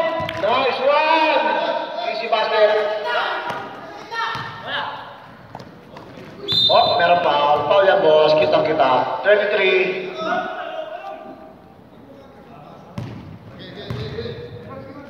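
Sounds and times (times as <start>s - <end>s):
basketball bouncing on floor: 0.2s - 0.5s, 4.2s - 4.6s, 13.0s - 14.2s
men shouting in echoing hall: 9.0s - 11.7s.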